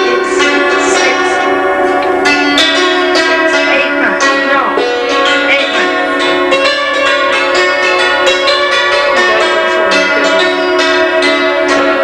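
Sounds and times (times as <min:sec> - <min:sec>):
bell-like instrumental music: 0:00.0 - 0:12.0.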